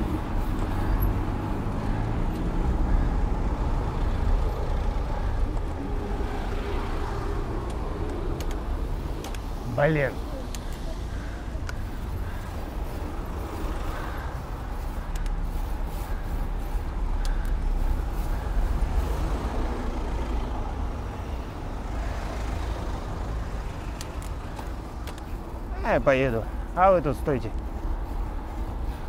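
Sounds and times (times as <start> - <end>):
car engines rumbling: 0.0 - 29.0
road noise: 0.0 - 29.0.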